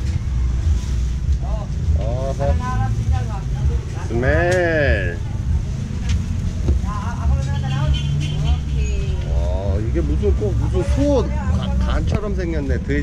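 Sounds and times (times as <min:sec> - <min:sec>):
low rumble of road traffic: 0:00.0 - 0:13.0
people's voices: 0:00.0 - 0:13.0.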